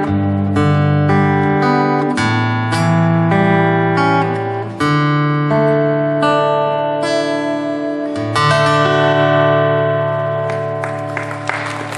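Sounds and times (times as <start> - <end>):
acoustic guitar chord ringing: 0.0 - 11.4
applause: 10.3 - 11.9.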